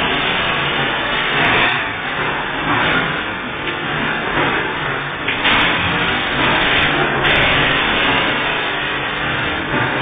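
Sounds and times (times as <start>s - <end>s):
hydraulic press running: 0.0s - 10.0s.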